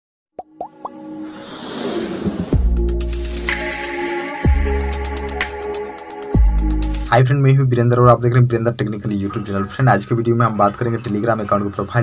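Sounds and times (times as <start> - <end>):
whoosh: 1.1 - 3.2.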